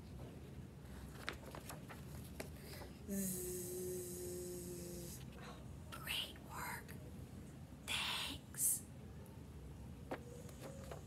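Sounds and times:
woman whispering: 0:03.1 - 0:07.0, 0:07.9 - 0:08.9.

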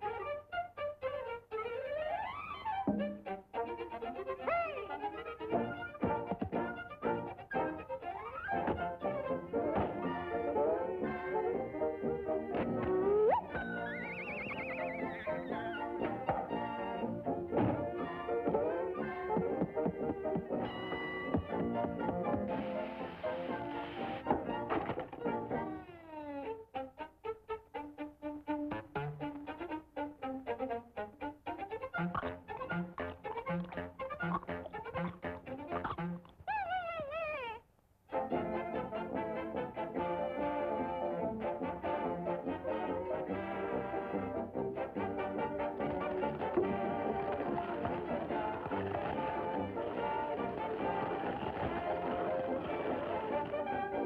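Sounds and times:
cartoon orchestral music: 0:00.0 - 0:37.4, 0:38.1 - 0:54.0
thunk: 0:02.9 - 0:03.2, 0:17.6 - 0:17.8, 0:24.7 - 0:25.3
cartoon animal wailing cry: 0:04.4 - 0:05.2, 0:12.8 - 0:15.9, 0:32.0 - 0:37.7.

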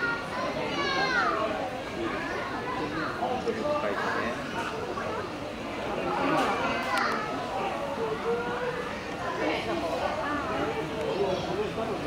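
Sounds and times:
distant children and adults chattering: 0:00.0 - 0:12.0.

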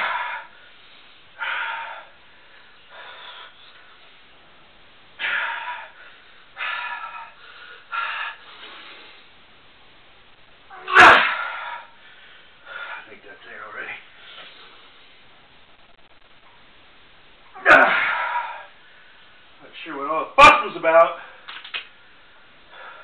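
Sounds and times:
man grunting with effort: 0:17.6 - 0:18.5.

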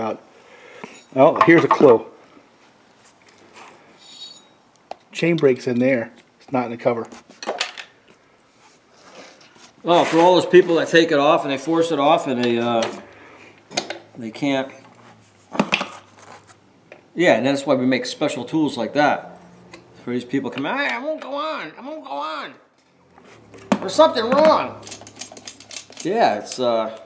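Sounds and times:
faint metallic clinks: 0:04.0 - 0:04.6
chainsaw rattle: 0:23.9 - 0:26.7.

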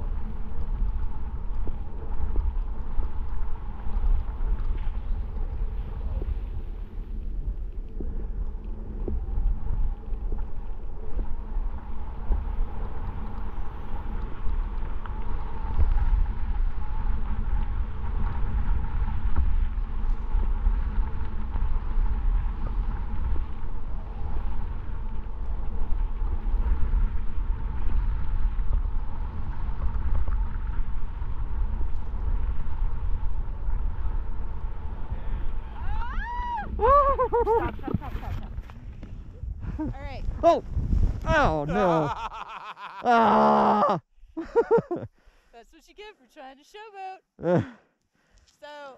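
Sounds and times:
wind buffeting microphone: 0:00.0 - 0:42.3.

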